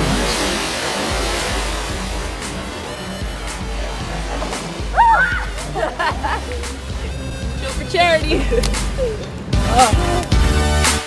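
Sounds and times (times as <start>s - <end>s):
pool water splashing: 0.0s - 11.0s.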